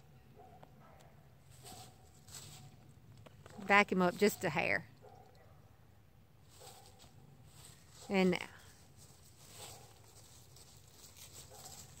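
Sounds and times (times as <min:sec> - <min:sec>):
dry leaves rustling underfoot: 0:01.4 - 0:04.7, 0:06.4 - 0:12.0.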